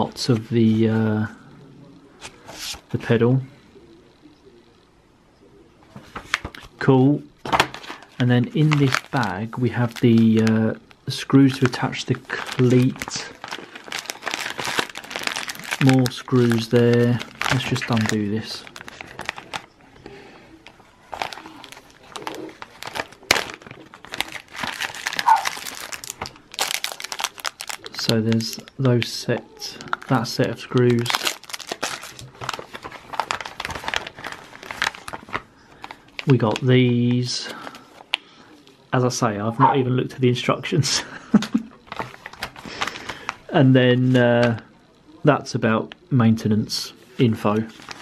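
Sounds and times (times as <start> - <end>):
plastic bag crinkling: 7.6 - 36.7, 41.8 - 43.5, 47.5 - 48.0.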